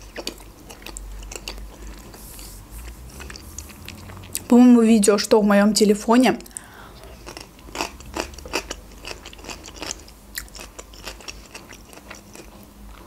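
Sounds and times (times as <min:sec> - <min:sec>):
person chewing: 0:00.0 - 0:04.5, 0:06.4 - 0:13.0.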